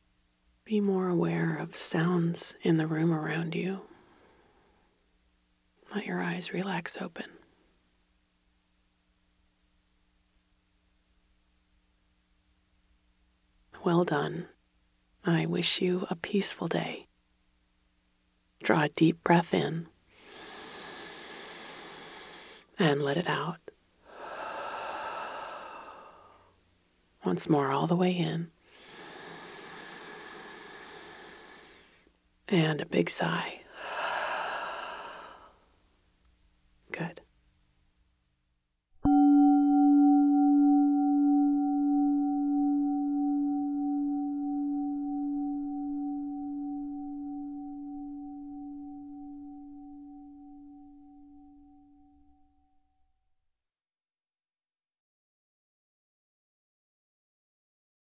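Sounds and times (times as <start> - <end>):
woman exhaling: 20.2 - 22.7, 24.0 - 26.5, 28.7 - 32.0, 33.7 - 35.7
singing bowl ringing: 39.0 - 52.6.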